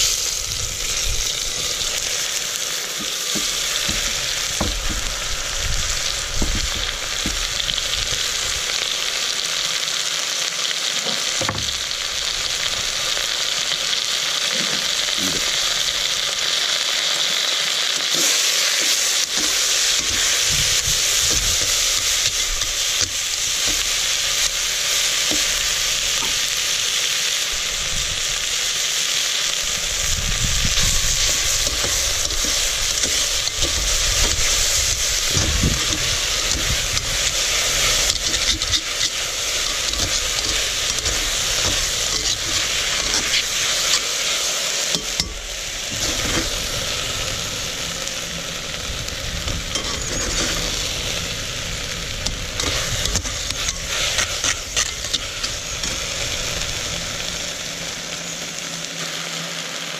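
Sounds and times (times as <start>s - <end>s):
onions sizzling in a pot: 0.0s - 59.9s
utensils scraping a pot: 18.0s - 26.6s, 30.6s - 46.6s, 49.6s - 50.9s, 52.2s - 56.2s.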